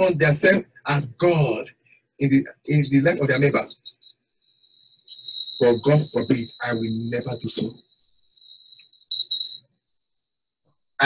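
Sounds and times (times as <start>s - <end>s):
high thin whistling tone: 3.7s - 9.6s.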